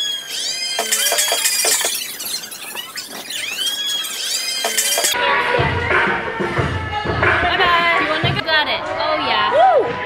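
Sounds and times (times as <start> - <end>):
sped up squeaky voices: 0.0 - 5.2.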